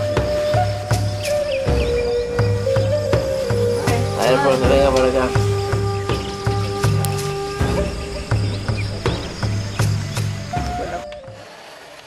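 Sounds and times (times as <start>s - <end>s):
background music with bass line and beat: 0.0s - 11.4s.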